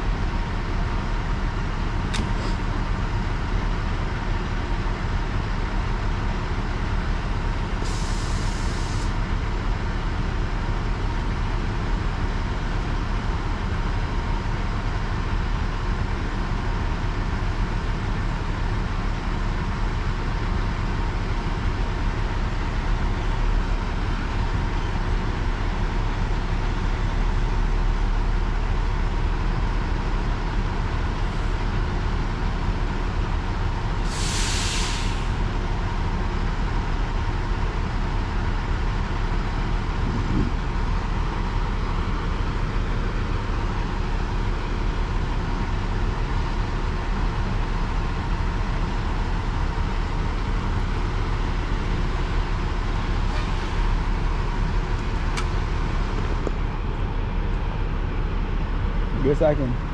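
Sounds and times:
crane diesel engine running: 0.0 - 59.9
air release hiss: 7.8 - 9.1, 34.0 - 35.4.

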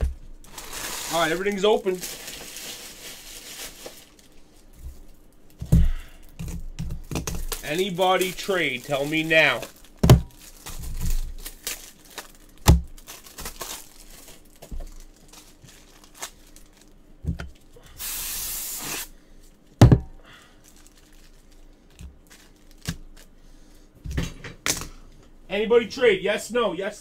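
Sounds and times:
packaging tearing rustle: 0.4 - 5.6, 6.4 - 17.0, 20.4 - 23.4
objects thumping on table: 19.8 - 20.2.

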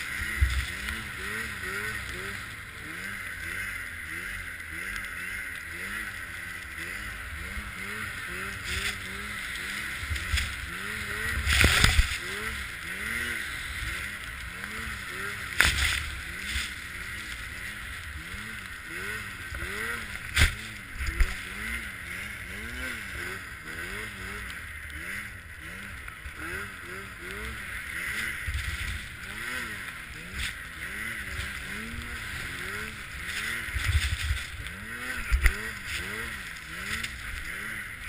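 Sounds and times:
rush of wind and snow: 0.0 - 38.0
snowmobile engine revving: 0.0 - 38.0.

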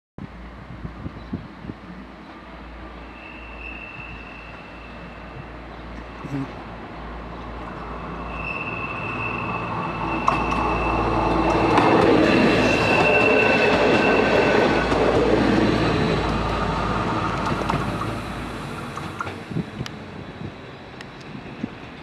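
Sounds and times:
train engine and wheels: 0.2 - 22.0
wheel flange squeal: 3.0 - 6.2, 8.2 - 14.9
rail clicks: 7.3 - 20.1.

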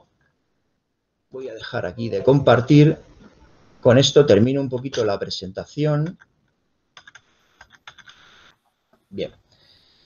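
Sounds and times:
computer keyboard clicks: 7.0 - 8.2.

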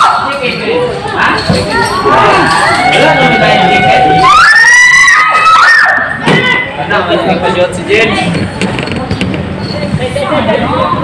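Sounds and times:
excited shouting and screaming: 1.7 - 6.8.

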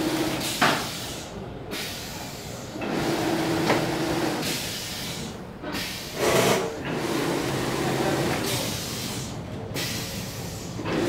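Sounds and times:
machinery humming with hiss: 0.0 - 11.0.

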